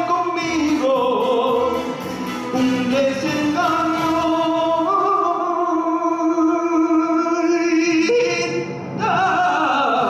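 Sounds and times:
man singing: 0.0s - 10.0s.

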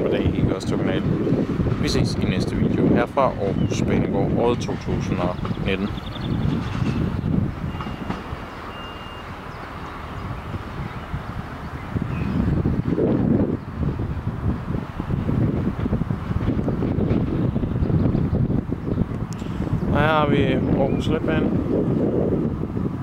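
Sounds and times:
diesel train rumbling: 0.0s - 23.0s.

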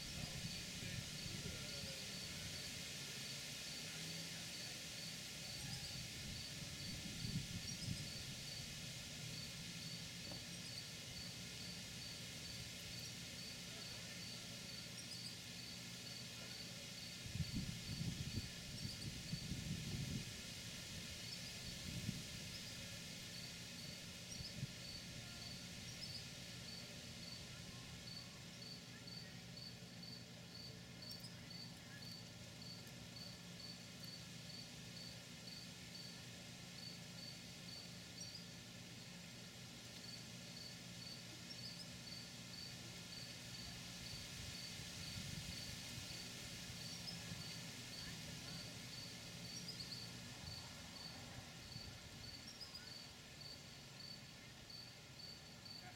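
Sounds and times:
cricket chirping: 0.0s - 38.6s, 39.3s - 55.9s.

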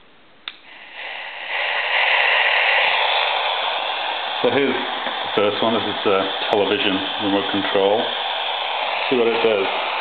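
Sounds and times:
radio static hiss: 0.6s - 10.0s.

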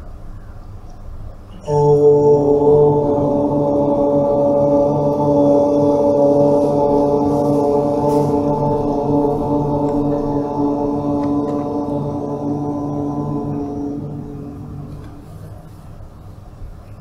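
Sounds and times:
person chanting om: 0.0s - 17.0s.

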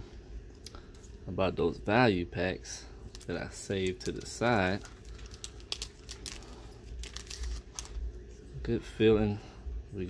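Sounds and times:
wrapper crinkling: 3.0s - 8.1s.

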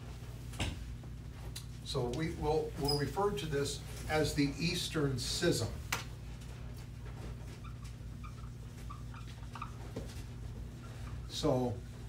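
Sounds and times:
steady low hum: 0.0s - 12.0s
marker squeaking on whiteboard: 7.1s - 11.5s.

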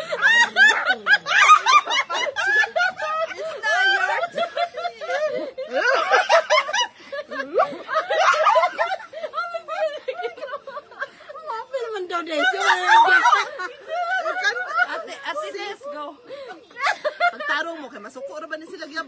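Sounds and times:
women laughing: 0.0s - 18.1s.

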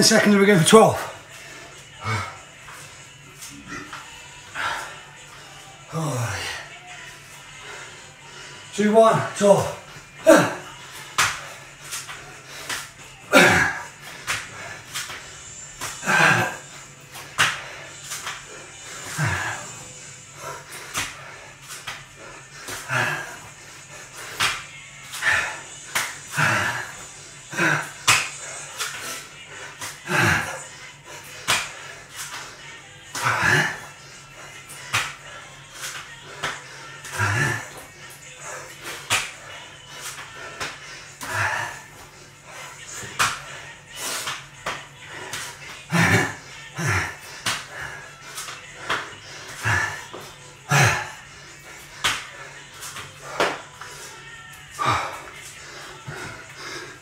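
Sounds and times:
hands and feet slapping tiled floor: 9.6s - 57.0s.

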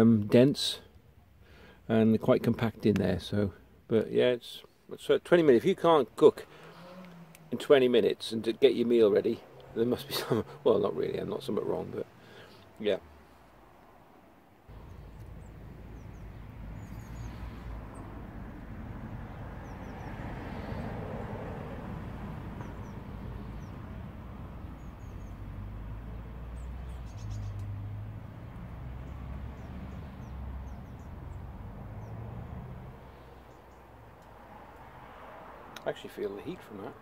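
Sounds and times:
faint bird chirps: 14.7s - 18.1s, 26.5s - 27.7s.

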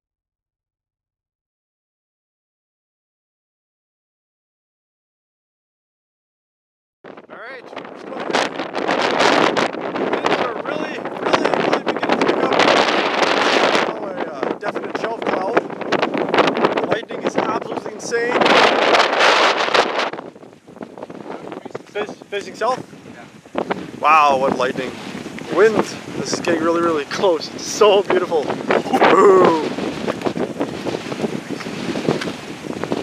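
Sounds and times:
wind gusting across microphone: 7.0s - 33.0s
person speaking: 25.5s - 29.8s.

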